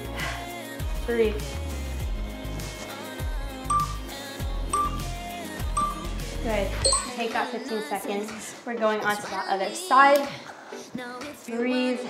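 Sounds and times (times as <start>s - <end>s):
background music with bass beat: 0.0s - 7.2s
high electronic timer beeps: 3.7s - 4.1s, 4.8s - 5.2s, 5.8s - 6.2s, 6.8s - 7.2s.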